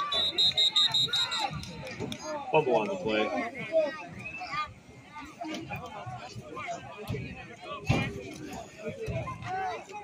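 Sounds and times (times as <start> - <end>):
spectators chattering and calling out: 0.0 - 10.0.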